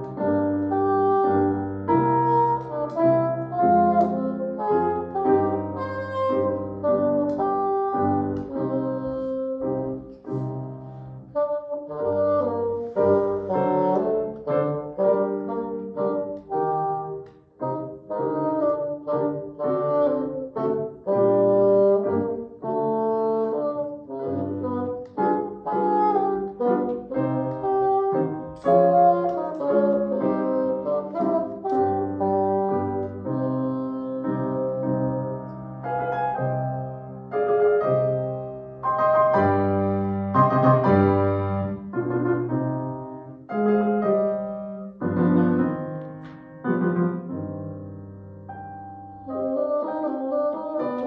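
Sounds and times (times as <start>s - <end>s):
bassoon melody: 0.0s - 51.0s
piano accompaniment: 0.0s - 51.0s.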